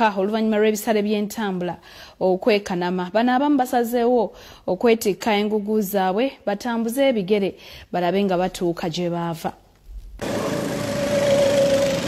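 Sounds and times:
small engine droning: 0:10.2 - 0:12.0.

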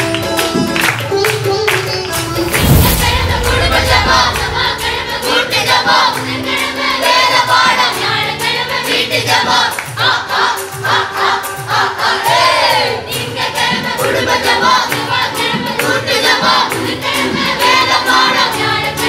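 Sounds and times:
children's choir singing: 0:02.2 - 0:19.0.

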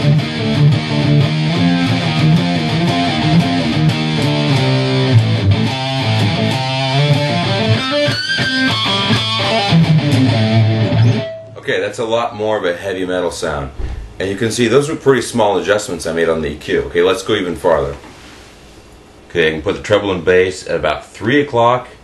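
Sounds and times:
distorted electric guitar riff: 0:00.0 - 0:11.6.

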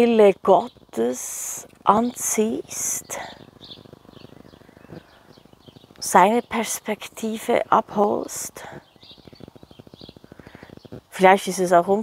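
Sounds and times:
birds chirping faintly: 0:00.0 - 0:12.0
steady low background noise: 0:00.0 - 0:12.0.

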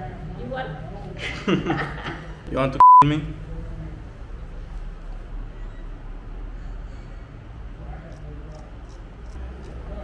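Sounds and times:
razor scraping beard hair: 0:08.0 - 0:10.0.

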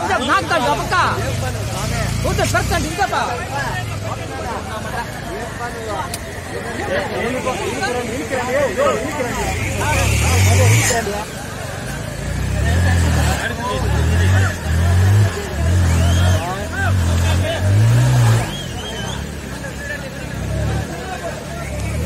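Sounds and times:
distant crowd calling out: 0:00.0 - 0:22.0.

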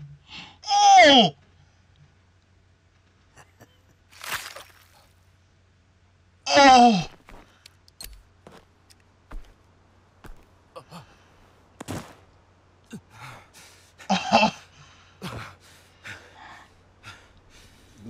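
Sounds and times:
people gasping and breathing hard: 0:10.3 - 0:12.2, 0:12.9 - 0:18.0.

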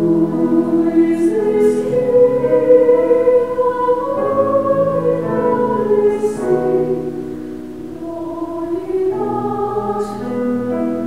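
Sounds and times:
women's choir singing: 0:00.0 - 0:11.0.

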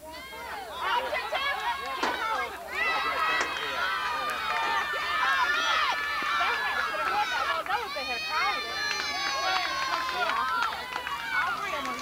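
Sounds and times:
girls shouting: 0:00.0 - 0:12.0.

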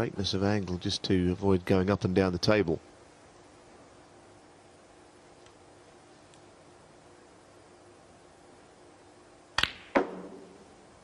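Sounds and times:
cue tip striking ball: 0:09.6 - 0:10.6
sharp click of balls colliding: 0:09.6 - 0:10.6.

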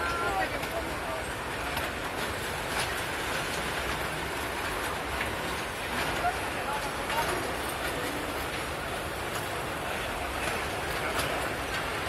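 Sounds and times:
light clacks of train wheels: 0:00.0 - 0:12.0
train wheels on rails: 0:00.0 - 0:12.0.

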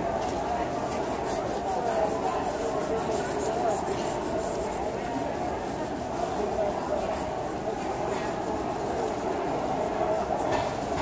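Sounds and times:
indoor crowd murmur: 0:00.0 - 0:11.0.

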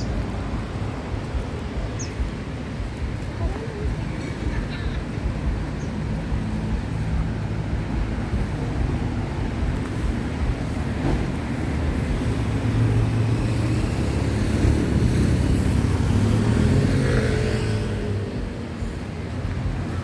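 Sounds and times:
vehicle engines passing: 0:00.0 - 0:20.0.

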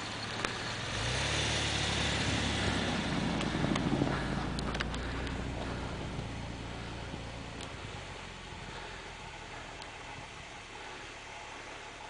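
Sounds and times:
car engine running: 0:00.0 - 0:12.0.

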